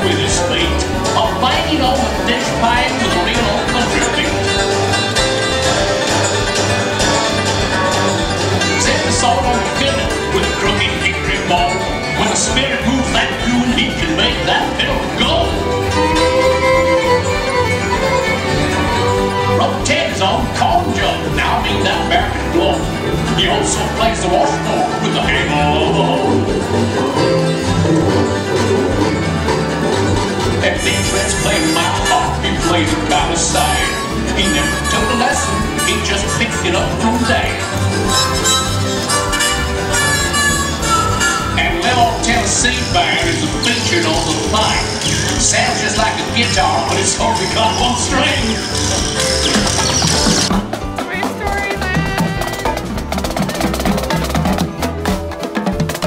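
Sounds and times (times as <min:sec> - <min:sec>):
bluegrass band music: 0:00.0 - 0:56.0
plucked banjo: 0:00.0 - 0:56.0
steady bass line: 0:00.0 - 0:56.0
tune playing along: 0:00.0 - 0:56.0
marching snare drums: 0:49.5 - 0:56.0.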